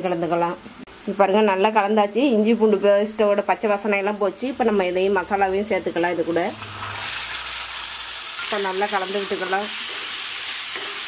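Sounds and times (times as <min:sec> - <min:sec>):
woman talking: 0:00.0 - 0:06.6, 0:08.5 - 0:09.8
onions sizzling in a pan: 0:00.0 - 0:11.0.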